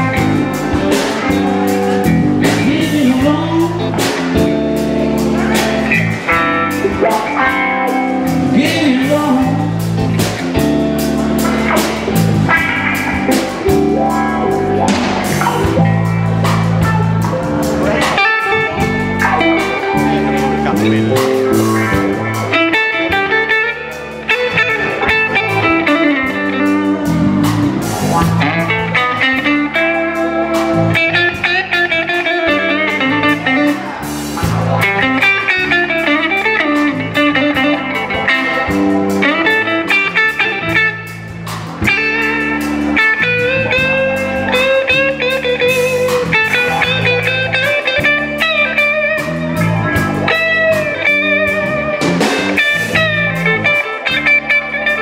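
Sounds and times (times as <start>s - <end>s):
blues band playing: 0.0s - 55.0s
electric guitar lead with bent notes: 0.0s - 55.0s.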